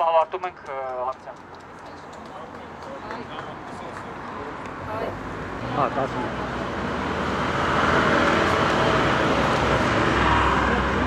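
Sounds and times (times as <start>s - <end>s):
low traffic rumble: 0.0s - 11.0s
passing vehicle rushing: 2.3s - 11.0s.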